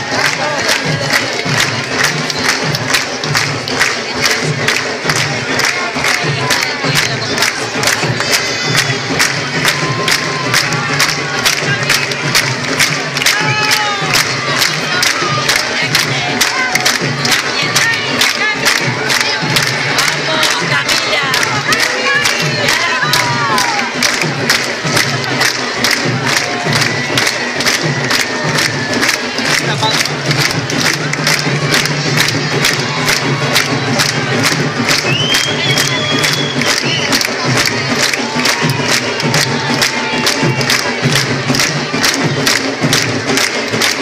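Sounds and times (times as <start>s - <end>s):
crowd shouting and cheering: 0.0s - 44.0s
drums beating quickly: 0.0s - 44.0s.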